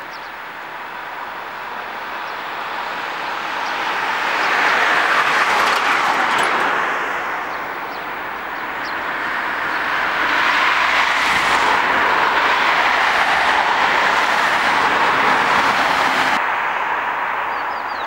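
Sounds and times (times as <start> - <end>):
road traffic passing: 0.0 - 18.0.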